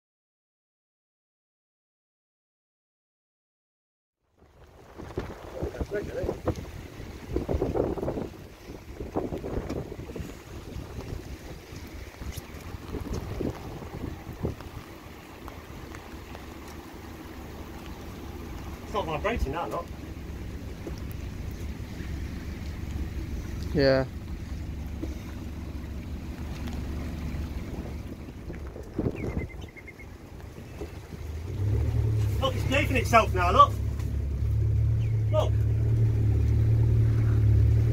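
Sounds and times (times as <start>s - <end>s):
wind buffeting microphone: 4.4s - 32.9s
steady low rumble: 4.4s - 37.9s
outboard engine idling: 4.5s - 37.9s
low hum: 6.6s - 37.9s.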